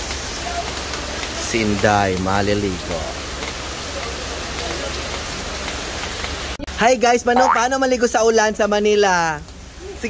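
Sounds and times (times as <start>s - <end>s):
rain on pavement and cars: 0.0s - 10.0s.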